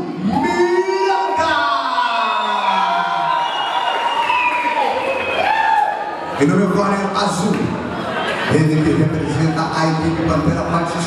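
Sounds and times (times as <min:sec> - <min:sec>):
crowd cheering: 0:00.0 - 0:06.6
whistles: 0:02.4 - 0:05.5.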